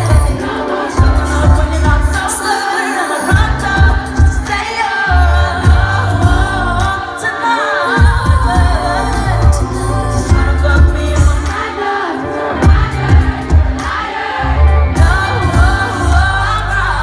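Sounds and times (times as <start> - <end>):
woman singing into microphone: 0.0 - 13.8, 15.0 - 17.0
live band playing pop: 0.0 - 17.0.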